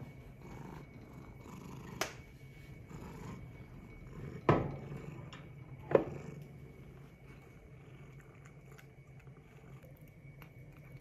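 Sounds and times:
cat purring: 0.0s - 11.0s.

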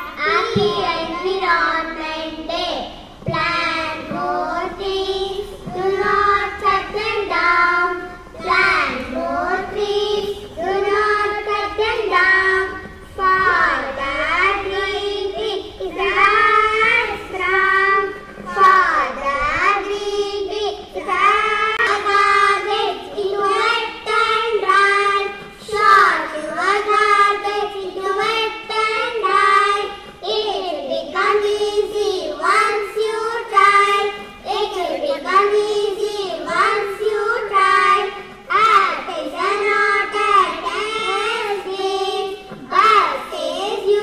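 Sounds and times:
girls singing in unison: 0.0s - 44.0s.

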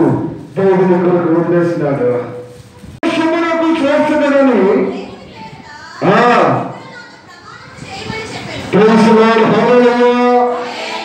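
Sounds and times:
man preaching through a microphone: 0.0s - 5.0s, 6.0s - 6.7s, 8.7s - 10.7s.

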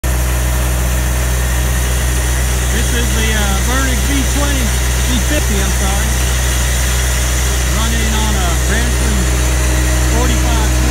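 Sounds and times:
tractor diesel engine humming: 0.0s - 10.9s.

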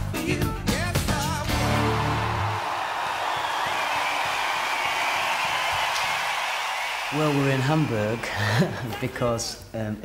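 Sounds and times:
crowd cheering and screaming: 1.5s - 8.6s.

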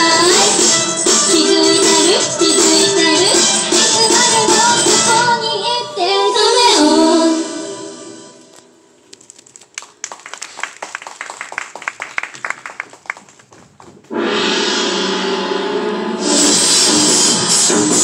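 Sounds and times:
women singing pop song: 0.0s - 7.9s
audience clapping: 9.1s - 14.1s.

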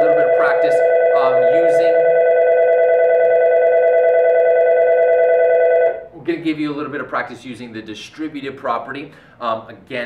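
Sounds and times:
steady electronic multi-pitch tone: 0.0s - 6.1s.

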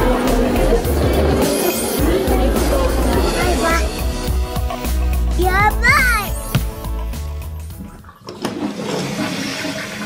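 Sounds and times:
toilet flushing water: 7.4s - 10.0s
toilet flush lever click: 8.2s - 9.3s.

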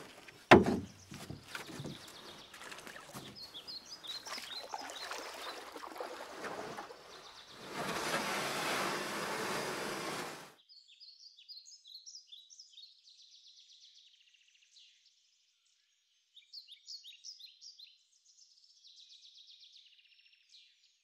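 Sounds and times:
birds chirping: 0.0s - 9.0s.

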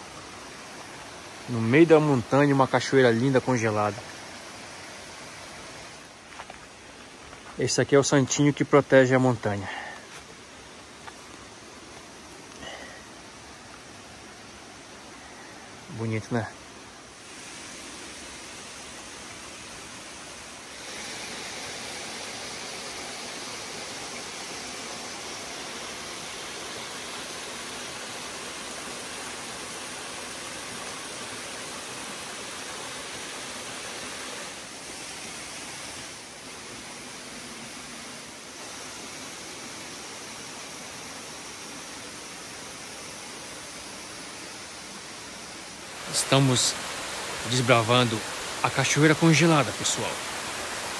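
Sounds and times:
waterfall and stream rushing: 0.0s - 50.9s.

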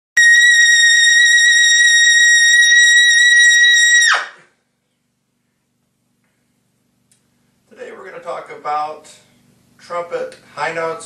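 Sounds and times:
trumpet high note: 0.2s - 4.4s.

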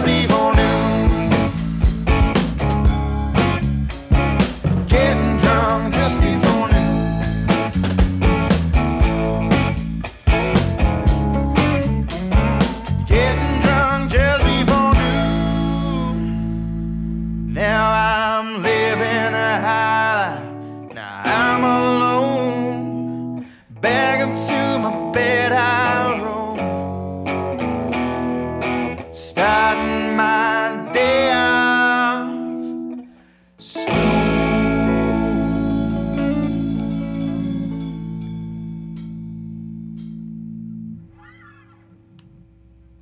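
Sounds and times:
blues-rock band playing: 0.0s - 17.8s, 23.9s - 31.8s, 33.8s - 41.7s
electric guitar lead with bends: 0.0s - 43.0s.

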